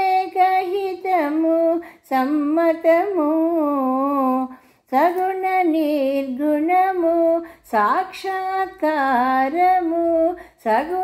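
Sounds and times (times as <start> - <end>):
woman singing devotional song: 0.0 - 11.0.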